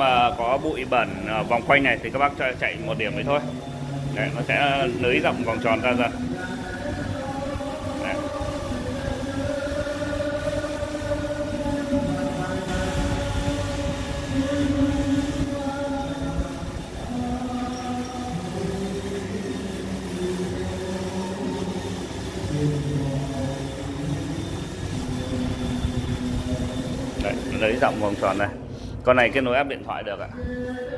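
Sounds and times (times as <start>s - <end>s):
loud karaoke singing: 0.0s - 28.6s, 29.2s - 30.9s.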